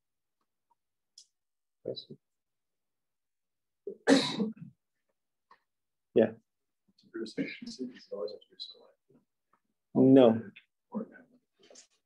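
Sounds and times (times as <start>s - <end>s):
person clearing throat: 3.9s - 4.7s.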